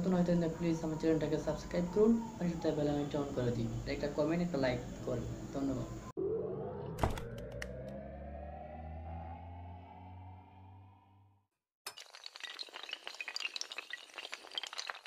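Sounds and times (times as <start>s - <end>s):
rising swell over low drone: 5.3s - 11.4s
breaking glass shatter: 11.9s - 15.0s.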